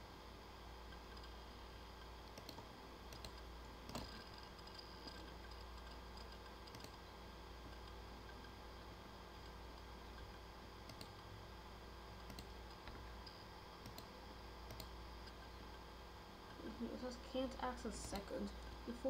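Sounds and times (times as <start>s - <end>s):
steady low hum and hiss: 0.0s - 19.0s
mouse and keyboard clicks: 2.3s - 7.0s, 10.8s - 11.2s, 12.2s - 15.4s.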